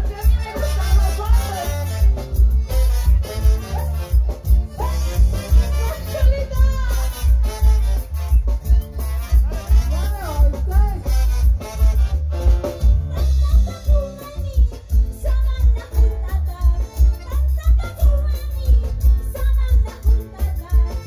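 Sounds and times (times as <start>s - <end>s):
heavy regular bass beat: 0.0s - 21.0s
live band music: 0.0s - 21.0s
women singing into microphones: 13.2s - 21.0s.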